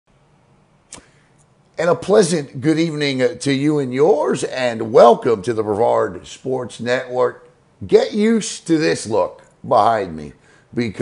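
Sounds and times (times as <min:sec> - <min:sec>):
faint low room hum: 0:00.1 - 0:11.0
sharp click: 0:00.9 - 0:01.5
man speaking: 0:01.8 - 0:11.0.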